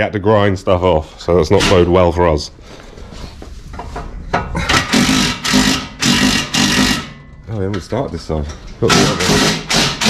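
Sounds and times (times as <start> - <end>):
power tool bursts: 4.8 - 7.2, 8.9 - 10.0.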